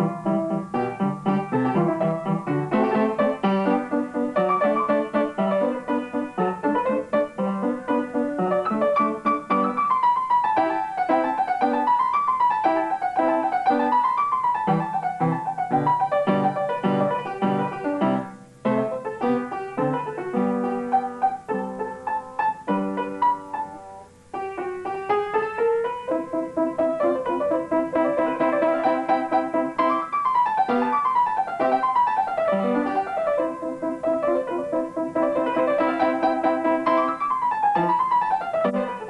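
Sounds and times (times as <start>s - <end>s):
solo upright piano: 0.0s - 39.0s.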